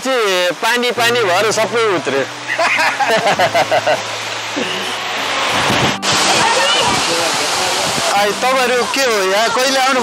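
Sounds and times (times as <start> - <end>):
waterfall pouring: 0.0 - 10.0.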